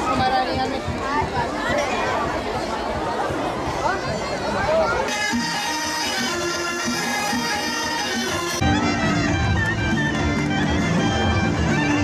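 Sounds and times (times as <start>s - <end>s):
folk music with reedy wind instrument: 4.8s - 12.0s.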